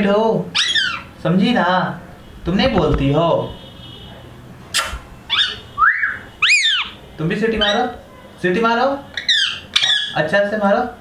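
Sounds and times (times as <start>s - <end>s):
parrot whistling: 0.5s - 1.1s, 4.7s - 7.0s, 7.6s - 8.0s, 9.1s - 10.2s.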